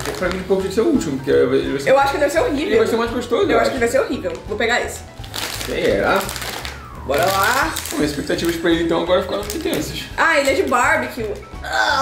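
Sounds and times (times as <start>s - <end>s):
plastic snack bag crinkling: 0.0s - 0.8s, 5.1s - 11.6s
music: 0.0s - 12.0s.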